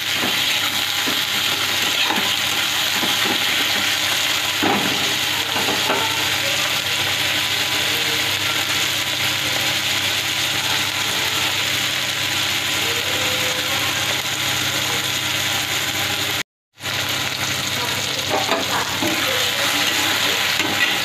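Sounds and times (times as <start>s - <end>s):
onions and tomatoes sizzling in oil: 0.0s - 21.0s.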